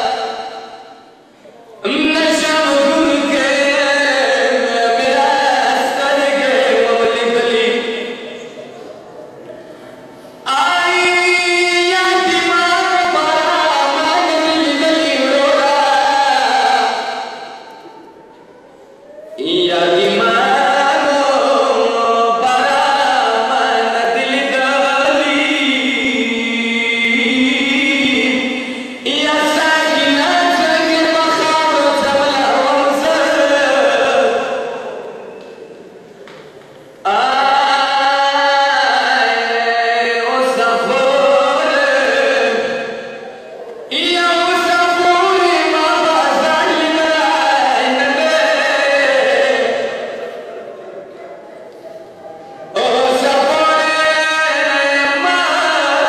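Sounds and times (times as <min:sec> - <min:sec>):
man chanting a lament: 0:00.0 - 0:18.2, 0:19.0 - 0:35.6, 0:37.0 - 0:56.0.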